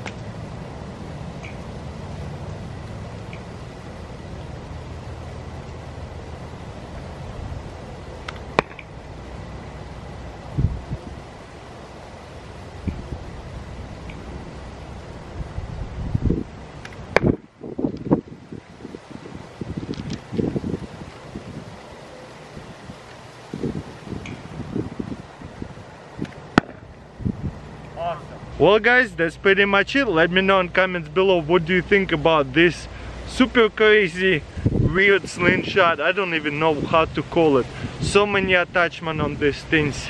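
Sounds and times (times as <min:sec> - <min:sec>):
steady wind: 0:00.0 - 0:40.0.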